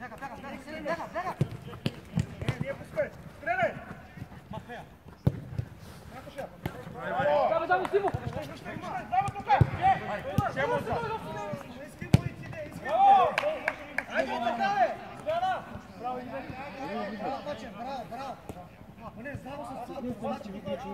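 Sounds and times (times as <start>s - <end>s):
ball being kicked: 5.2s - 5.7s.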